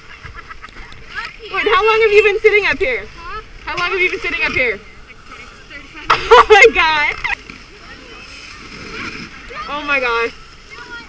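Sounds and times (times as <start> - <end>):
skis sliding over packed snow: 1.1 - 11.0.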